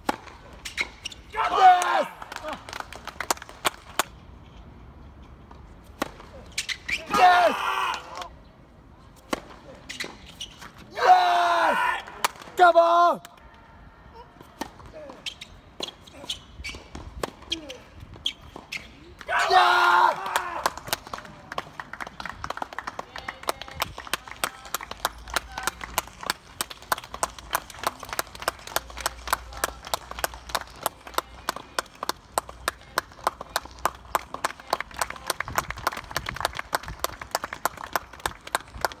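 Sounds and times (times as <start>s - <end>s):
crowd clapping: 20.2s - 39.0s.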